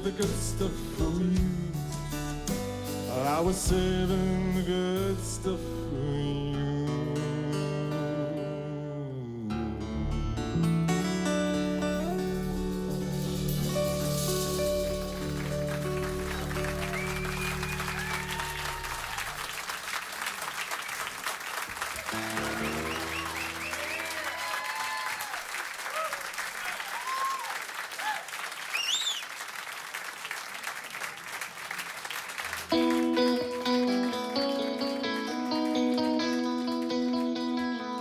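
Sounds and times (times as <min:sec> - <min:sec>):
loud electric guitar: 0:09.5 - 0:19.4, 0:22.0 - 0:25.2, 0:32.7 - 0:38.0
audience applauding and cheering: 0:14.1 - 0:37.8
whoops and whistles: 0:16.8 - 0:19.3, 0:22.4 - 0:25.3, 0:26.9 - 0:29.3
band final chord ringing: 0:22.1 - 0:24.2.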